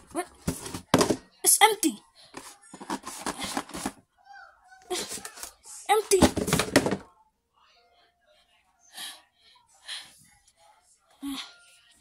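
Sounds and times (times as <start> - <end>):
cardboard boxes rustling and scraping: 2.4 - 4.0.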